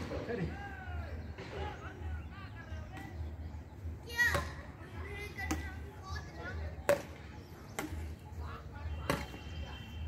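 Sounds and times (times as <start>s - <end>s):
voices outdoors: 0.0s - 10.0s.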